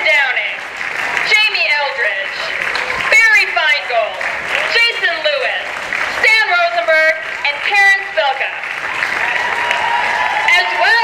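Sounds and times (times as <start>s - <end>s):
crowd applauding: 0.0s - 11.0s.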